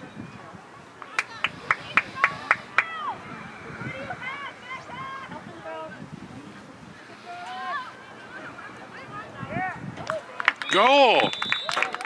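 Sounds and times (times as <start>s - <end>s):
sharp claps: 10.0s - 12.0s.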